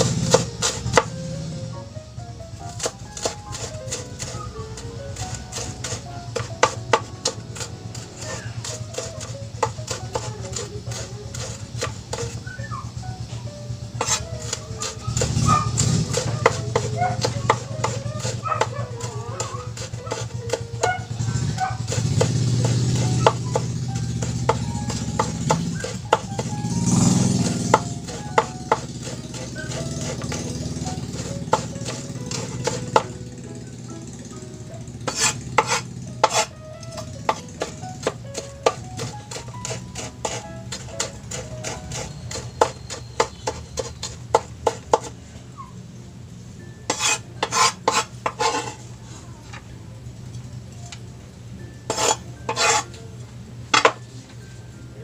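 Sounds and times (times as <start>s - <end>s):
knife chopping on wooden board: 0.0s - 1.2s, 2.7s - 12.4s, 14.0s - 33.2s, 35.0s - 45.1s, 46.9s - 48.8s, 51.9s - 52.8s.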